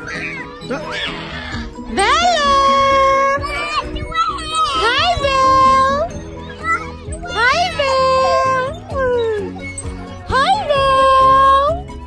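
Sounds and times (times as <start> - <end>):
toddler squealing: 0.0 - 1.9, 3.3 - 11.3
background music: 0.0 - 12.0.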